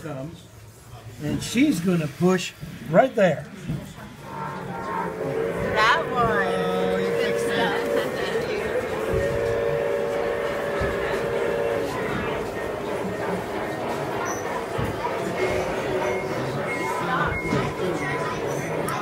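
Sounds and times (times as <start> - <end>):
model locomotive horn blasts: 4.8 - 19.0.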